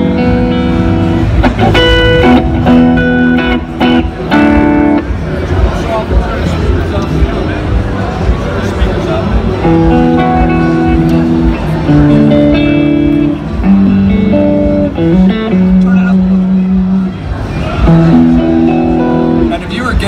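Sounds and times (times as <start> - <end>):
electric guitar chords and notes: 0.0 - 20.0.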